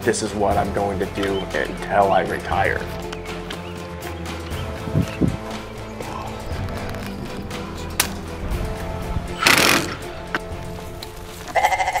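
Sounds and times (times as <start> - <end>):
background music with steady tones: 0.0 - 12.0
goat bleating: 11.5 - 12.0.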